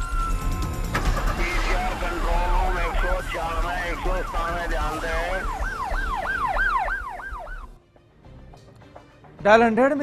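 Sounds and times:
siren wailing: 0:00.0 - 0:07.8.

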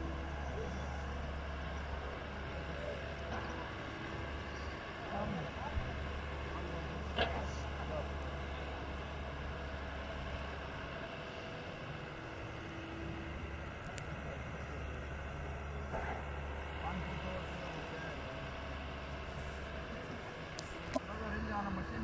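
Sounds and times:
excavator diesel engine rumbling: 0:00.0 - 0:22.0
faint distant voices: 0:00.0 - 0:22.0.

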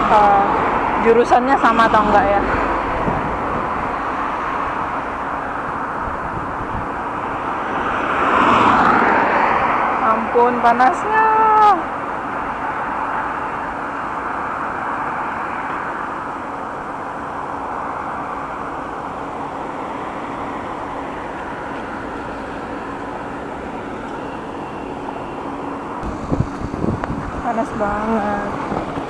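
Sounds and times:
cars passing: 0:00.0 - 0:29.0.

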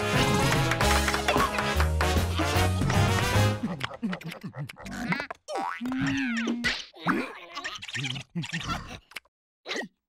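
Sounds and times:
squeaky character voices: 0:03.7 - 0:10.0.

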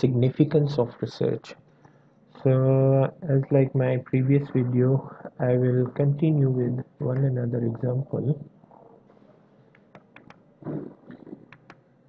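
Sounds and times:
man murmuring: 0:02.4 - 0:08.4.

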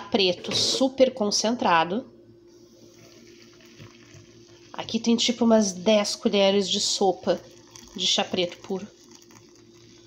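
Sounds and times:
water pouring: 0:02.9 - 0:10.0.

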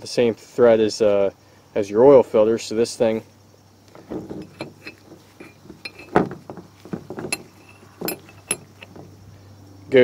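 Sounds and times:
metal clinks and knocks on plastic: 0:03.9 - 0:09.2.

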